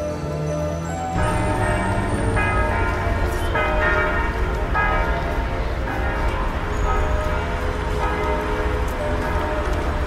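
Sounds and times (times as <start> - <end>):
church bells ringing: 0.0 - 10.0.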